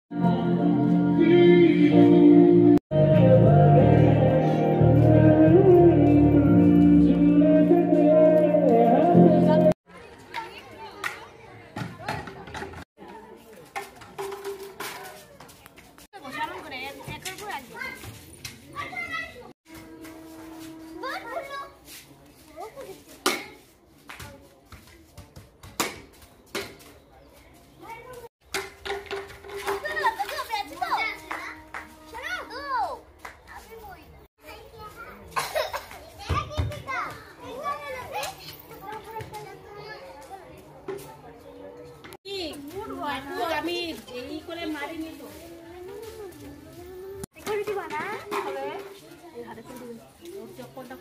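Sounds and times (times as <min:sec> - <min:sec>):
children chattering and calling out: 0:09.0 - 0:24.6, 0:27.1 - 0:28.3, 0:29.0 - 0:51.0
girls talking: 0:29.6 - 0:41.4, 0:42.2 - 0:50.0.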